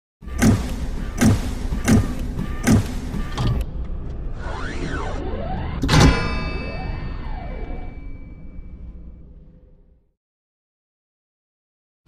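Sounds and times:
low droning music: 0.2s - 10.1s
metallic clang ringing: 5.8s - 7.2s.

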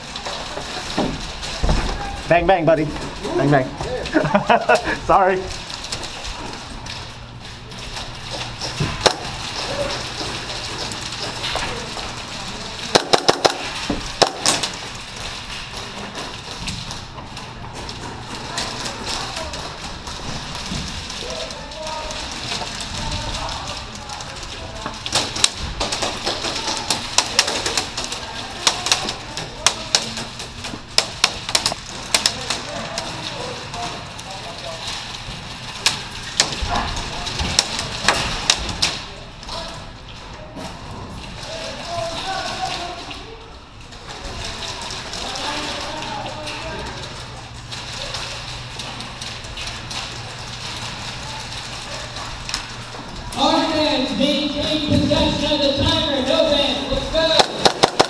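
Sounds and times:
indistinct voices murmuring: 0.0s - 58.0s
airsoft gunfire cracks: 57.4s - 58.0s.

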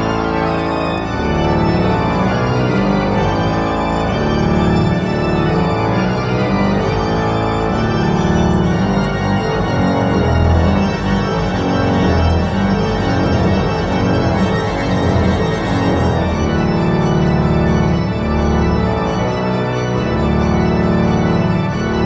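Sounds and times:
pipe organ playing: 0.0s - 22.0s.

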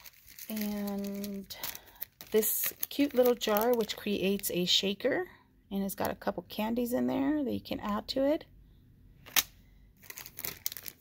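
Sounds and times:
plastic sleeves crinkling: 0.0s - 4.8s, 9.3s - 11.0s.

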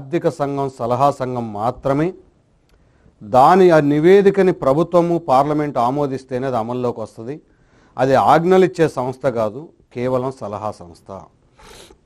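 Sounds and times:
man speaking: 3.2s - 7.4s, 8.0s - 11.3s.

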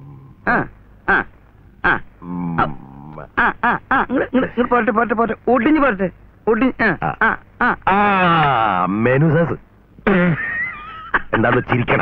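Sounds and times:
drawn-out vocal sound: 0.0s - 4.2s
men speaking in exclamations: 7.0s - 9.0s.

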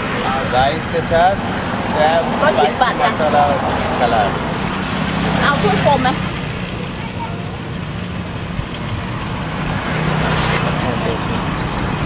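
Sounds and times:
faint voices: 0.0s - 12.0s
traffic engine hum: 0.0s - 12.0s.

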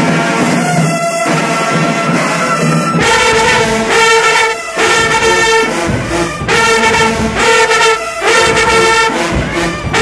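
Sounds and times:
marching band brass playing held notes: 0.0s - 10.0s.

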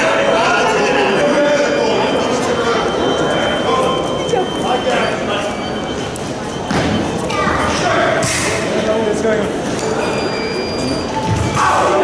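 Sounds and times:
crowd chatter in large hall: 0.0s - 12.0s.

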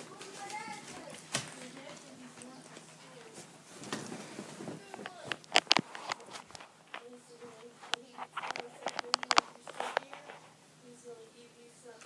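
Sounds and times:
footsteps: 0.0s - 10.6s
handling rustling: 0.0s - 10.6s.

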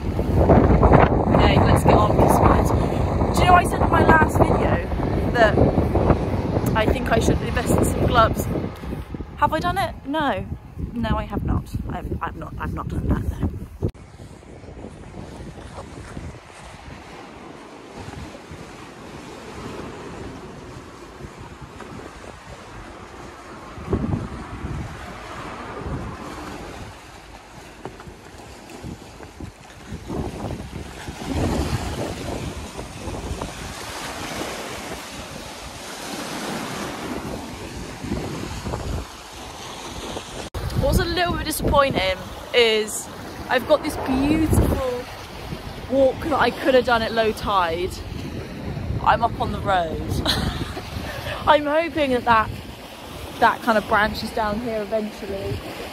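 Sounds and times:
waves washing onto rocks: 0.0s - 9.5s, 14.0s - 55.9s
wind buffeting microphone: 0.0s - 55.9s.

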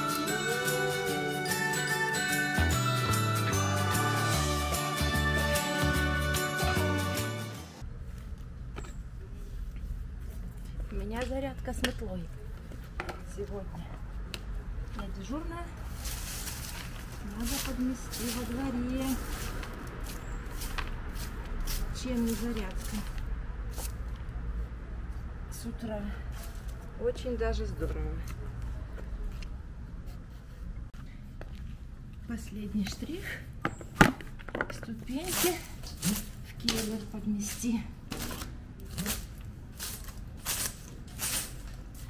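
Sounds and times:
broom sweeping leaves on asphalt: 15.8s - 25.2s, 26.1s - 27.2s, 35.1s - 42.0s.

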